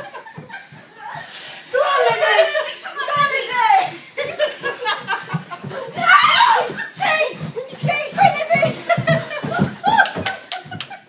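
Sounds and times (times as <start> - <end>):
people laughing: 0.0 - 7.2, 8.4 - 11.0
excited voices: 0.9 - 11.0.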